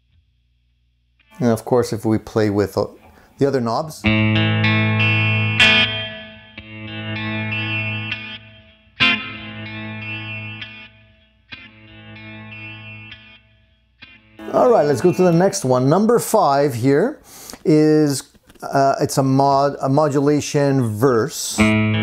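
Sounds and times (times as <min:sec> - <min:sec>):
electric guitar chords with delay: 0:04.0 - 0:16.2, 0:21.6 - 0:22.0.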